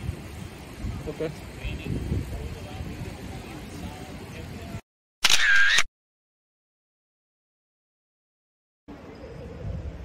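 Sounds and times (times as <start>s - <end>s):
outdoor background noise: 0.0s - 5.9s, 8.9s - 10.0s
camera shutter: 5.2s - 5.9s.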